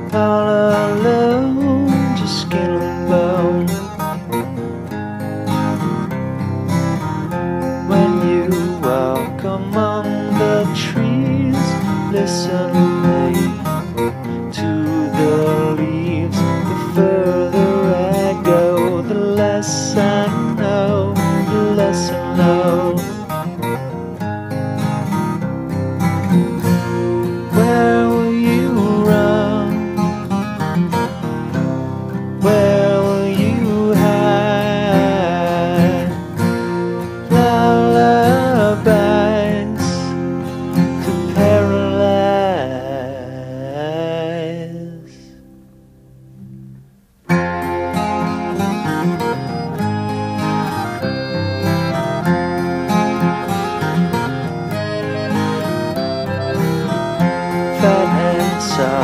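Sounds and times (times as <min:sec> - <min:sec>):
acoustic rock song: 0:00.0 - 0:59.0
strummed acoustic guitar: 0:00.0 - 0:59.0.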